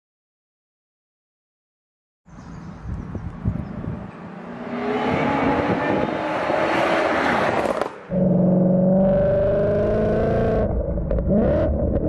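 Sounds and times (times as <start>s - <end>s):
car engine approaching at speed: 2.9s - 12.0s.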